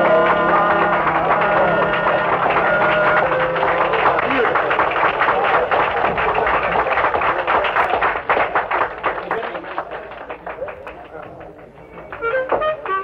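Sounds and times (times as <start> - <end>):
crowd applauding: 0.0 - 13.0.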